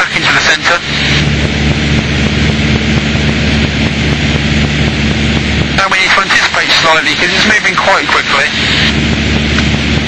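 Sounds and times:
airplane engine and propeller droning: 0.0 - 10.0.

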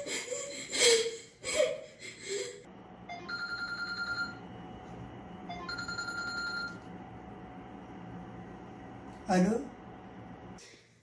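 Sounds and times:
mobile phone ringtone trilling: 3.1 - 4.4, 5.5 - 6.8.

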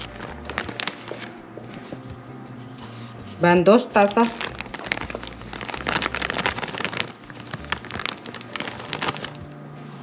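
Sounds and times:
flour pouring with crackles: 4.3 - 9.4.

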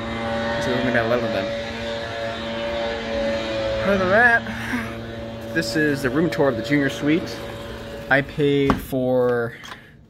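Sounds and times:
mechanical hum: 0.0 - 10.0.

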